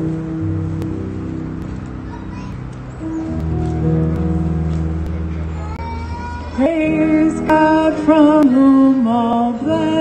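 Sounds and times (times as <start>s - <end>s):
electric keyboard sustained chord: 0.0s - 10.0s
woman singing into microphone: 6.5s - 10.0s.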